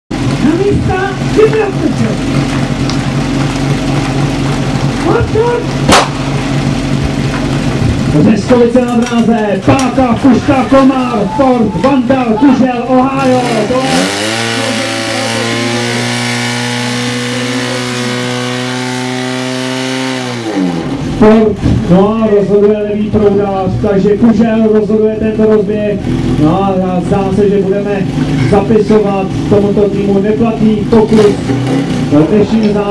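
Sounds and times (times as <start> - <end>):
pump engine idling: 0.1 - 19.9, 22.9 - 32.9.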